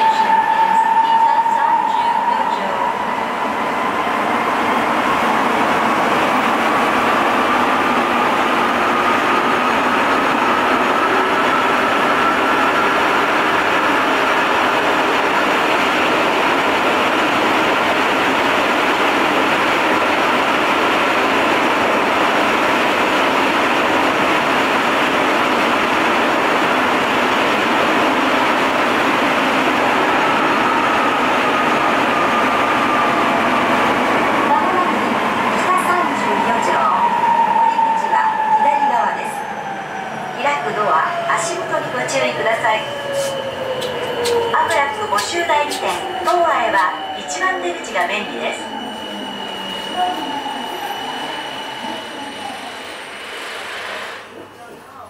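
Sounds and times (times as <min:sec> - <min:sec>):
train running noise: 0:00.0 - 0:55.0.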